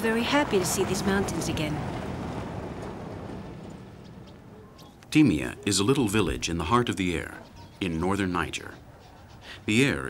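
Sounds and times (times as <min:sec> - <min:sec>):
pickup engine hum: 0:00.0 - 0:07.6
road noise on dirt track: 0:00.0 - 0:10.0.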